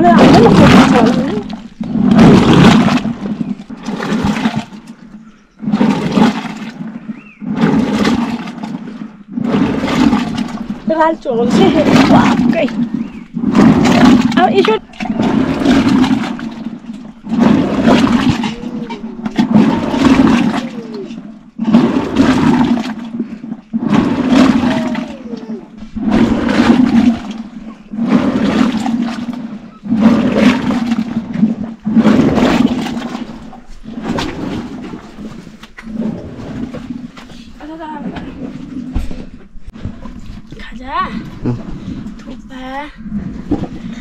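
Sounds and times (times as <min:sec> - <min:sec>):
liquid sloshing and splashing: 0:00.0 - 0:44.0
wooden churn plunger strokes: 0:00.0 - 0:44.0.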